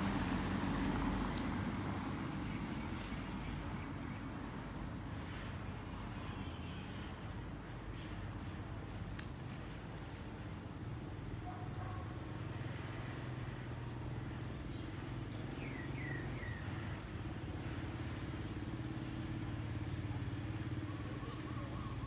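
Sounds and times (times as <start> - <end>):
low engine hum: 0.0 - 5.1.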